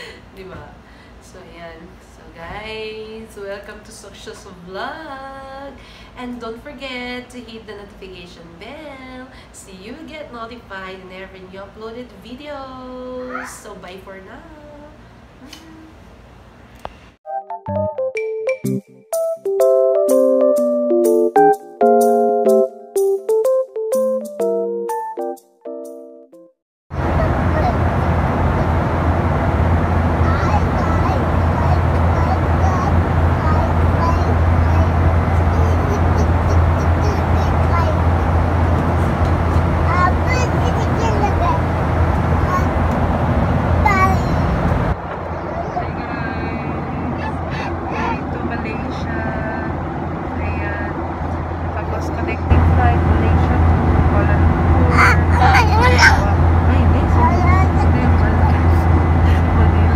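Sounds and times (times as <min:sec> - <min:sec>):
airliner cabin rumble: 0:26.9 - 0:59.9
faint voices: 0:45.0 - 0:49.8, 0:51.8 - 0:59.9
person speaking: 0:45.3 - 0:49.8, 0:51.8 - 0:59.9.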